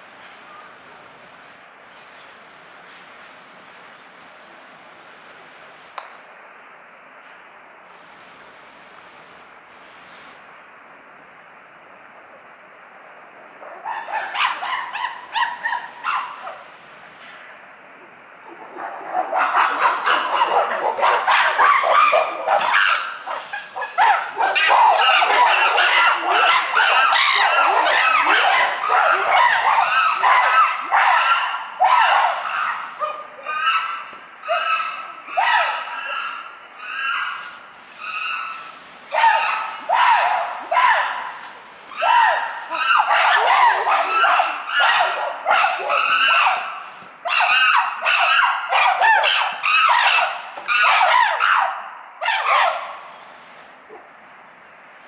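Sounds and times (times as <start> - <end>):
chimpanzees calling: 13.6 - 16.8, 18.0 - 53.1.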